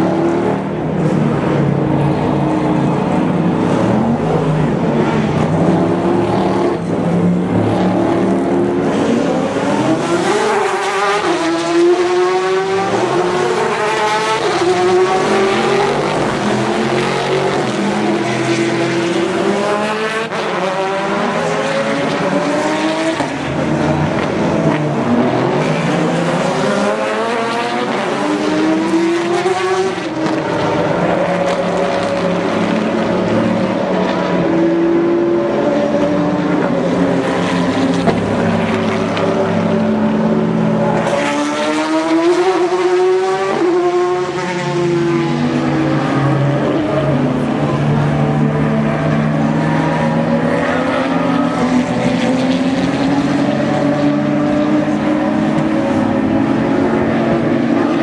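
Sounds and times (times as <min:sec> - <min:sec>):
race car engines accelerating: 0:00.0 - 0:58.0.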